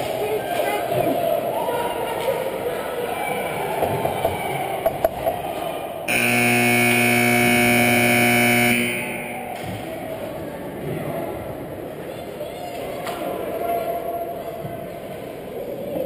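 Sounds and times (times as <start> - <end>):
steady rink noise: 0.0 - 16.0
scoreboard horn buzzing: 6.1 - 9.8.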